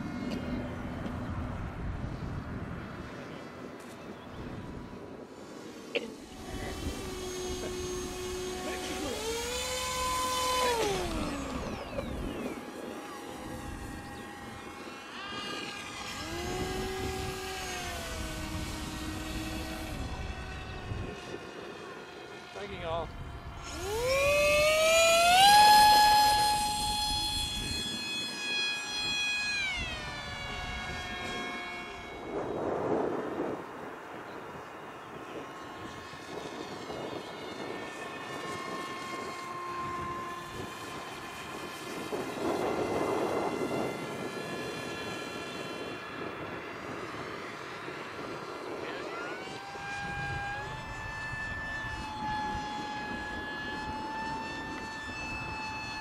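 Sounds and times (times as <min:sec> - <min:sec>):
model plane motor whine: 0:00.0 - 0:56.0.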